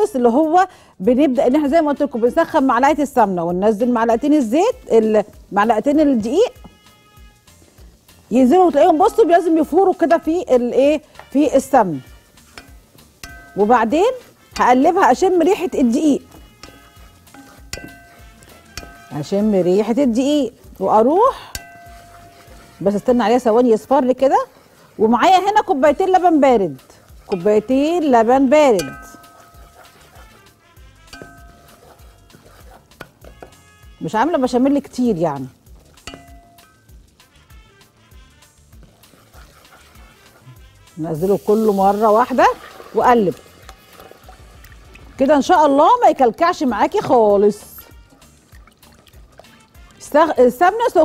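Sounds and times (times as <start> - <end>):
soft background music: 0.0 - 51.0
stirring flour in a pot: 3.7 - 51.0
wooden spatula knocking saucepan: 12.5 - 19.8, 27.2 - 30.2, 31.0 - 33.7.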